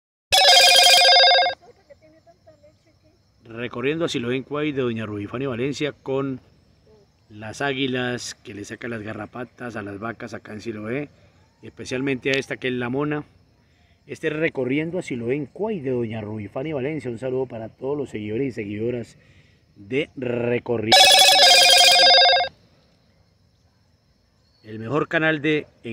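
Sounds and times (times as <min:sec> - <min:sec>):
ringing tone with fast trill: 0:00.4 - 0:01.6, 0:20.9 - 0:22.5.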